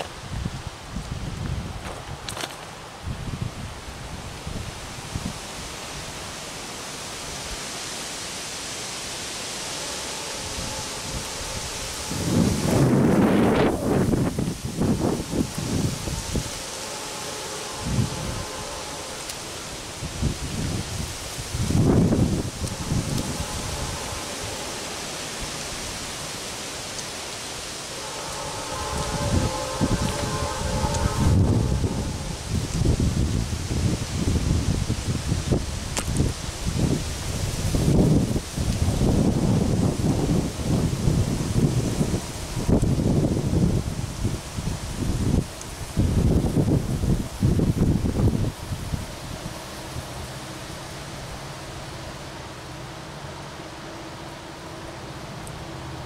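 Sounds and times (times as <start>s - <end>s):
wind buffeting microphone: 0.0s - 6.2s, 9.4s - 51.4s
wind rustling tree leaves: 0.0s - 56.0s.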